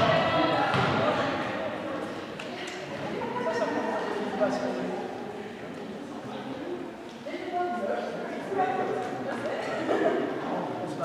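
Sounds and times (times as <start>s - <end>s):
volleyball bouncing on floor: 0.0s - 1.2s.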